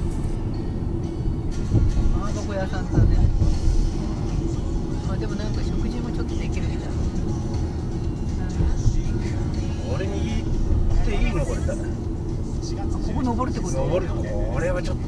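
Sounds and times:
car interior rumble: 0:00.0 - 0:15.0
car radio speech and music: 0:00.0 - 0:15.0.

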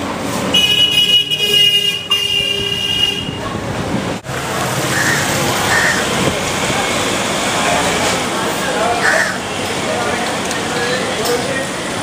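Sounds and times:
street noise: 0:00.0 - 0:12.0.

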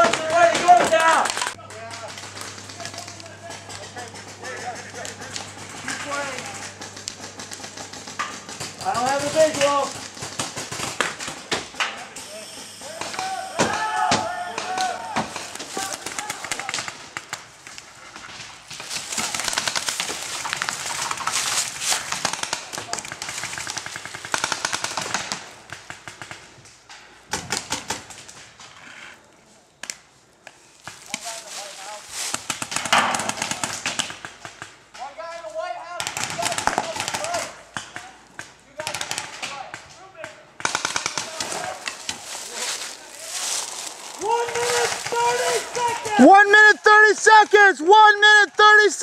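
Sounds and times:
players shouting: 0:12.3 - 0:16.9, 0:41.2 - 0:49.0
paintball markers firing: 0:18.2 - 0:26.5, 0:32.3 - 0:34.8, 0:36.0 - 0:42.2.

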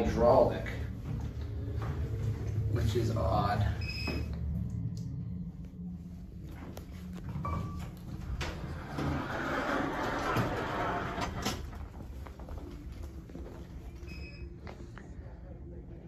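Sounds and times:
elevator low hum: 0:00.0 - 0:16.0
elevator doors sliding open: 0:07.4 - 0:12.0.

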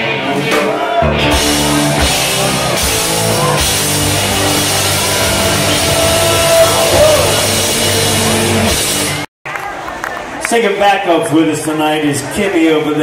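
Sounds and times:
rock band playing loudly: 0:00.0 - 0:09.3.

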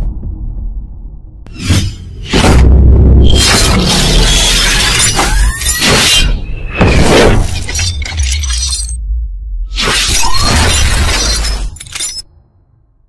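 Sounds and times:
deep booming bass: 0:00.0 - 0:01.6, 0:02.4 - 0:03.3.

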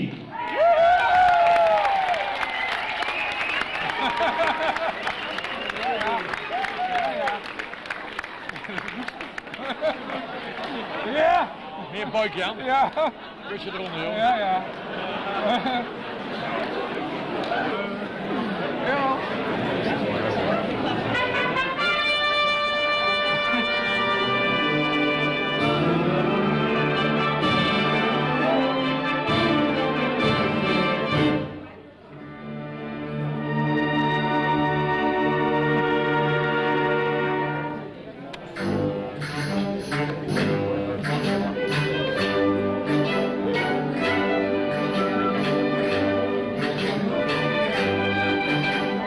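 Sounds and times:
audience clapping: 0:00.4 - 0:13.1, 0:13.8 - 0:15.1, 0:16.2 - 0:18.2
brass-led wind band playing: 0:21.0 - 0:37.9, 0:38.6 - 0:49.0.

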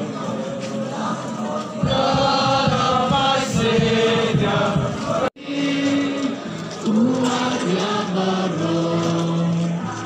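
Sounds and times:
brass band playing a hymn: 0:00.0 - 0:10.0.

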